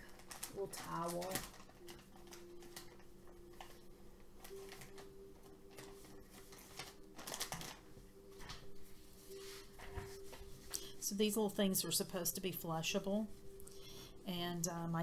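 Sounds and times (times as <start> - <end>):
wipe pack rustling: 0.0 - 11.0.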